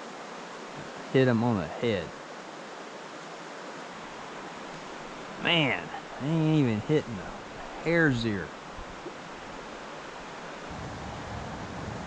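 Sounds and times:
river water rushing: 0.0s - 12.0s.

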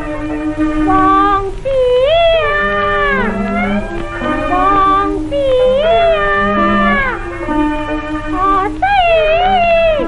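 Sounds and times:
held accompanying notes: 0.0s - 10.0s
opera singing on old record: 0.0s - 10.0s.

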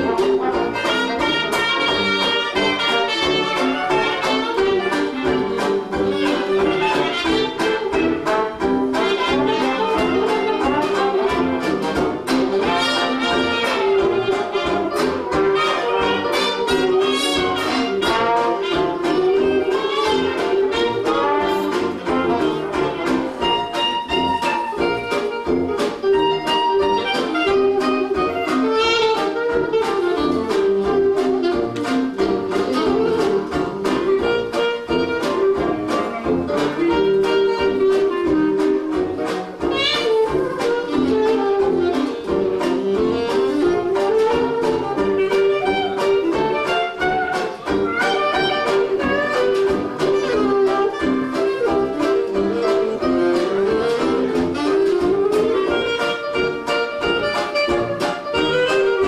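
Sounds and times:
jazz band playing: 0.0s - 59.0s.

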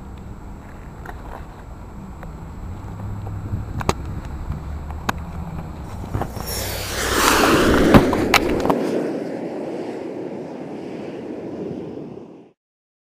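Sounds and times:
microphone handling noise: 2.9s - 8.9s.

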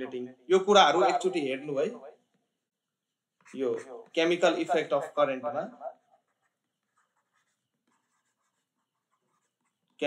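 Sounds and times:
stylus scratching on tablet: 2.2s - 10.0s.

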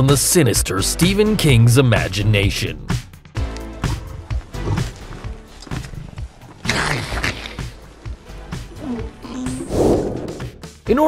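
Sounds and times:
film score music with low hits: 7.5s - 11.0s.

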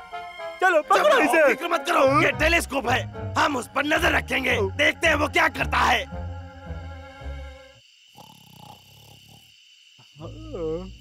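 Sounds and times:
faint rough snore: 8.1s - 9.6s.

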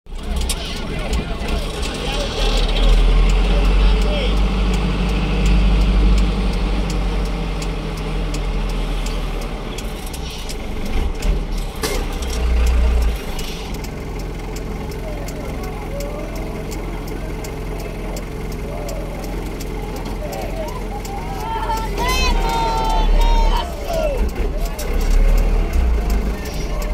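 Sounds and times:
faint voices: 0.1s - 5.0s, 12.6s - 26.9s
car engine and road rumble: 0.1s - 26.9s.

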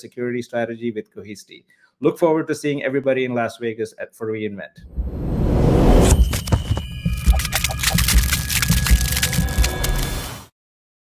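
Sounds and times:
steady high tones: 4.8s - 10.2s
sharp glitchy clicks: 5.8s - 10.5s.

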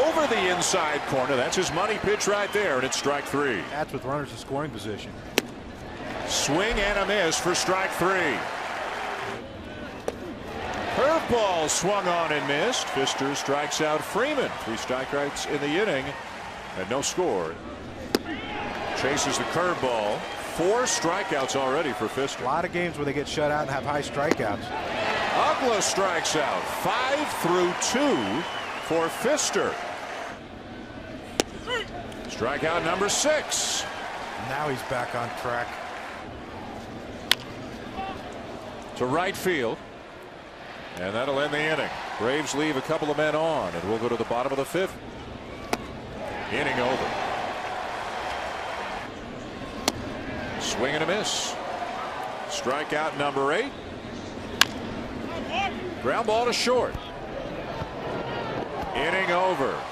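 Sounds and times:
stadium crowd murmur: 0.0s - 59.9s
baseball bat crack: 5.3s - 7.4s, 18.0s - 19.4s, 24.2s - 24.5s, 31.3s - 33.0s, 37.2s - 37.9s, 45.6s - 46.0s, 49.7s - 50.2s, 54.4s - 55.0s.

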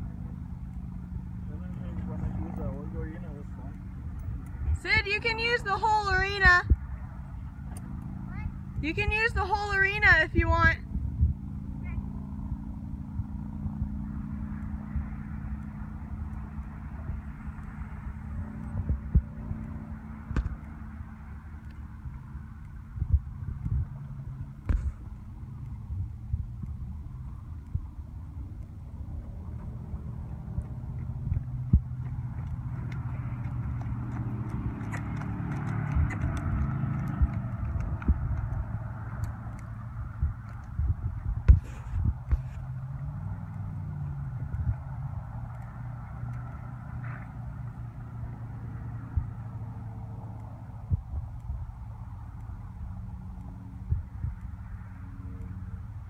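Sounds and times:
low hum: 0.0s - 56.0s
hoofbeats on dirt: 14.6s - 49.4s.

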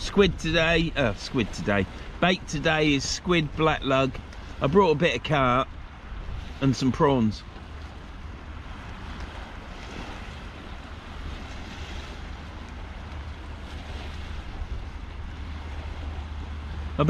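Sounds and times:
waves washing on shingle: 0.0s - 17.0s
wind buffeting microphone: 7.4s - 17.0s.

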